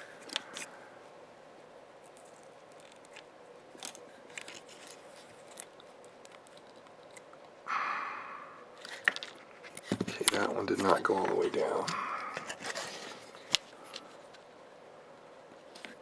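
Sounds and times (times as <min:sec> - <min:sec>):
faint steady hum: 0:00.0 - 0:16.0
soldering clicks and crackles: 0:02.0 - 0:07.6.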